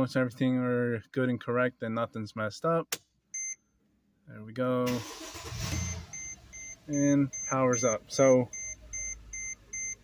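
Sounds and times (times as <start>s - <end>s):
car engine starting and idling: 4.8s - 10.0s
short high beeps: 5.8s - 10.0s.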